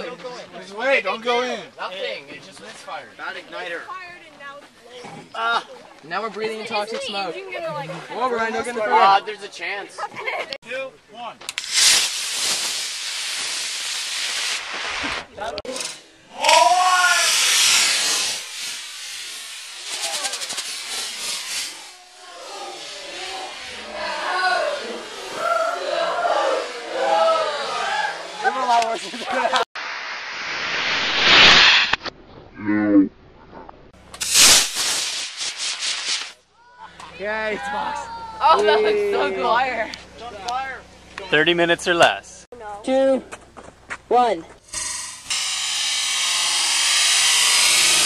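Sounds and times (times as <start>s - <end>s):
rocket motor rushing hiss: 11.5s - 25.4s, 29.8s - 32.1s, 34.0s - 36.4s, 44.6s - 48.0s.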